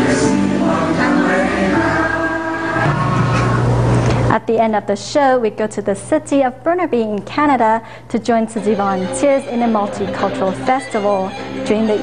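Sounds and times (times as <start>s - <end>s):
choir singing held notes: 0.0s - 4.0s.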